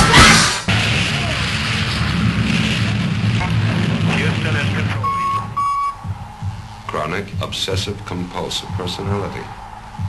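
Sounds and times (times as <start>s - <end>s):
dense bass-heavy sound: 0.0s - 10.0s
short electronic beeps: 5.0s - 6.0s.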